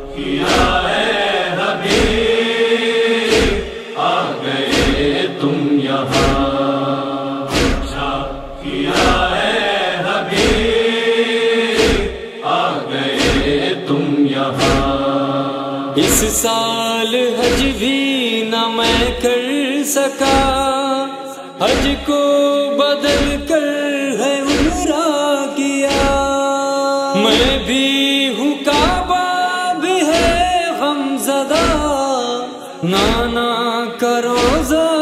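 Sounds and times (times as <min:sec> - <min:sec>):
chest-beating thuds: 0:00.0 - 0:01.1, 0:01.8 - 0:02.4, 0:03.3 - 0:03.8, 0:04.6 - 0:05.2, 0:06.1 - 0:06.7, 0:07.5 - 0:09.6, 0:10.3 - 0:10.9, 0:11.8 - 0:12.2, 0:13.1 - 0:13.7, 0:14.6 - 0:15.1, 0:17.4 - 0:17.9, 0:18.8 - 0:19.3, 0:21.7 - 0:22.1, 0:23.1 - 0:23.5, 0:24.5 - 0:24.9, 0:25.9 - 0:26.3, 0:28.7 - 0:29.1, 0:30.1 - 0:30.6, 0:31.6 - 0:32.0, 0:34.4 - 0:34.8
men chanting wordless refrain: 0:00.0 - 0:35.0.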